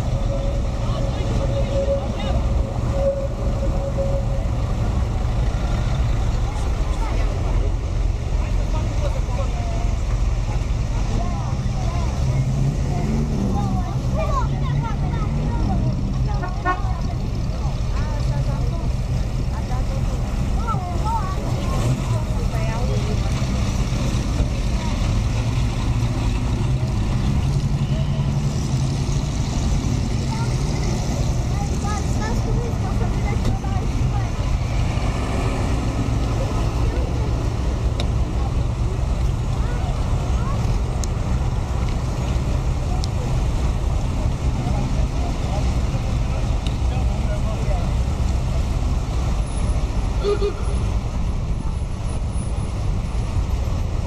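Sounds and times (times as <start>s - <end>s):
car engines idling: 0.0s - 54.0s
distant chatter of voices: 0.0s - 54.0s.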